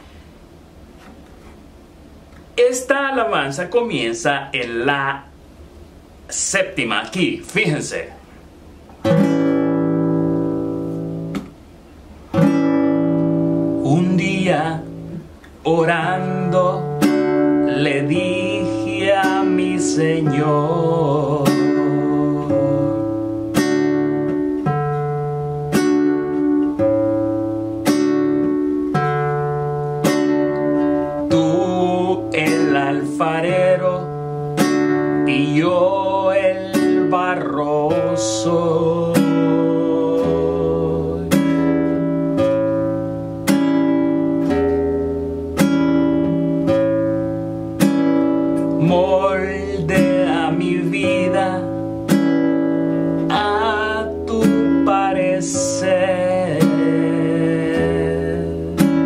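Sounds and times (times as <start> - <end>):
classical guitar fingerpicked: 8.8 - 59.0
man singing: 13.8 - 23.3, 31.2 - 34.1, 35.2 - 41.4, 48.8 - 51.8, 53.3 - 59.0.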